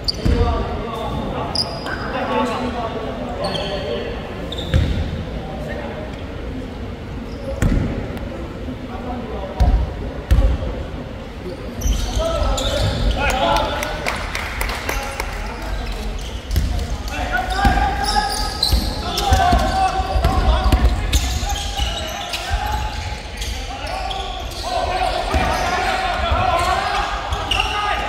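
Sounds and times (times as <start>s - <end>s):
players shouting: 17.1s - 28.0s.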